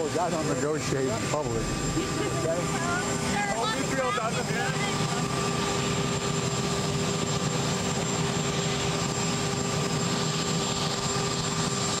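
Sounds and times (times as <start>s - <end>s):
aircraft turbine engines idling: 0.0s - 12.0s.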